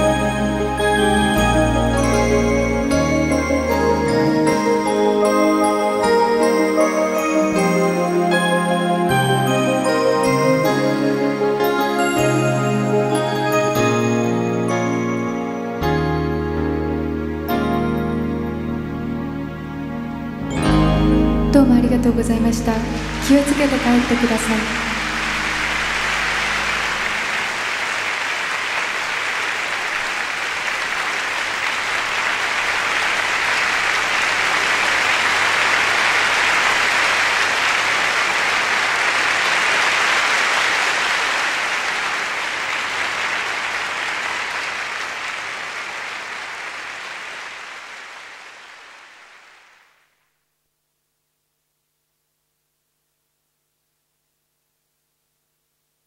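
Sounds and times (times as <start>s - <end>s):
audience applauding: 22.8s - 50.1s.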